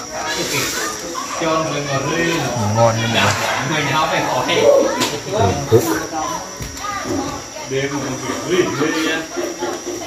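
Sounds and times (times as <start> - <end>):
indistinct voices talking: 1.6 - 7.6.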